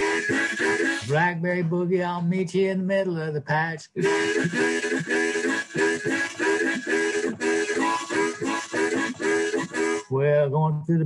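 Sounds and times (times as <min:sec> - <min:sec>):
harmonica chord riff: 0:00.0 - 0:01.4, 0:04.0 - 0:10.1.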